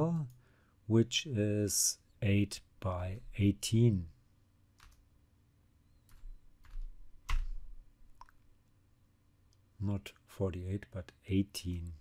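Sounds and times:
keyboard keys pressed: 0:06.1 - 0:08.4.

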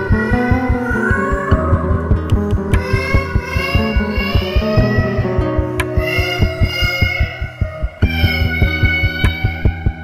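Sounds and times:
heartbeat thumping: 0:00.0 - 0:10.0
held musical tones: 0:00.0 - 0:10.0.

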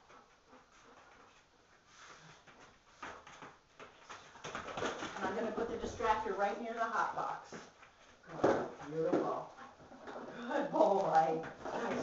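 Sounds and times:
woman talking in a low voice: 0:05.2 - 0:07.7, 0:08.3 - 0:09.7, 0:10.4 - 0:12.0.

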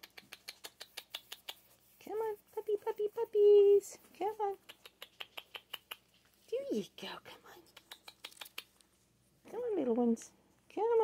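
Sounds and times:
sharp tongue clicks: 0:00.0 - 0:01.7, 0:04.6 - 0:06.2, 0:07.7 - 0:08.8.

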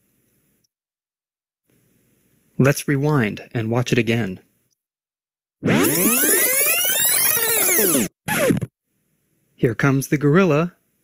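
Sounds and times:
tape rewind warble: 0:05.6 - 0:08.7.

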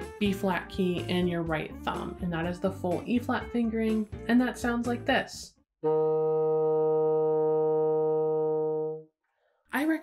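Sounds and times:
bassoon holding a note: 0:05.8 - 0:09.0.

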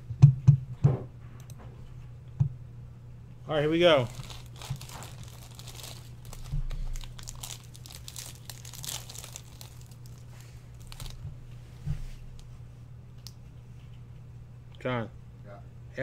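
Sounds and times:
steady low hum: 0:00.0 - 0:16.0
card pack wrapper crinkling and tearing: 0:03.8 - 0:11.2.

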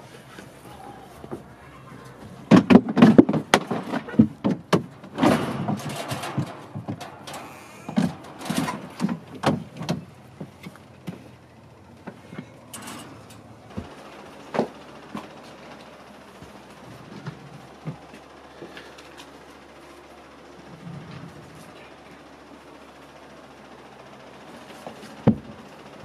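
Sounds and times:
knocks and bumps of climbing: 0:00.0 - 0:19.6, 0:24.7 - 0:26.0.

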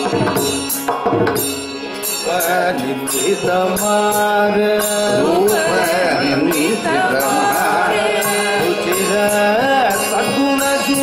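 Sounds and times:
steady percussive beat: 0:00.0 - 0:11.0
group singing devotional music: 0:02.0 - 0:11.0.

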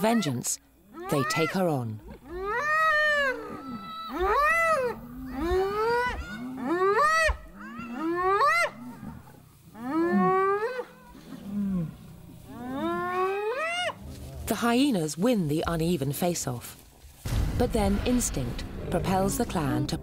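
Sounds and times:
hyenas yelping and whooping: 0:00.9 - 0:14.2.

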